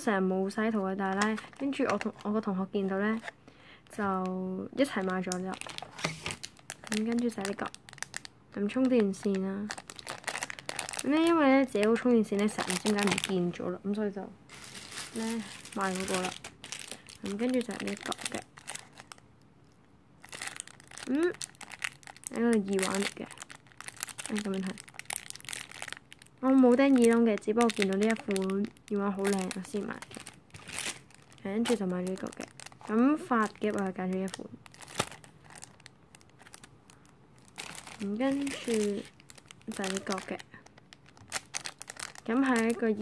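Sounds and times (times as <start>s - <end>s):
plastic bag crinkling: 0.5s - 3.3s, 3.9s - 13.6s, 14.5s - 19.2s, 20.2s - 43.0s.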